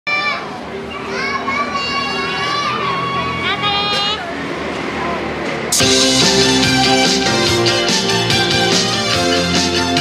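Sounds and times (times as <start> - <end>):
children shouting: 0.1 - 5.4.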